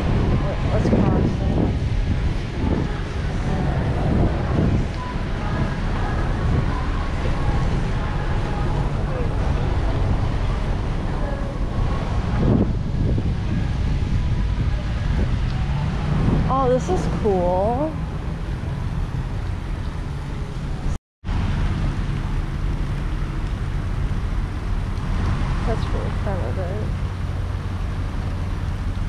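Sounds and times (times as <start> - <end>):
faint voices: 0.0 - 18.0
wind rumbling on microphone: 0.0 - 29.0.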